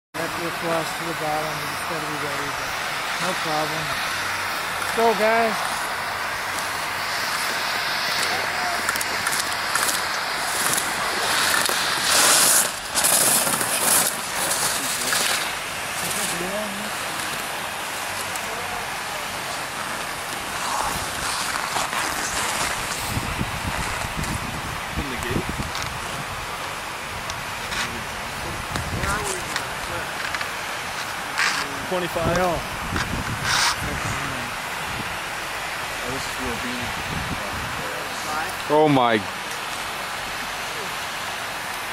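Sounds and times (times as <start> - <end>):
ski edges scraping on snow: 3.1 - 18.8, 19.4 - 26.2, 28.7 - 34.4
wind on microphone: 19.3 - 30.4, 31.2 - 38.7
faint brief hiss: 33.0 - 33.9.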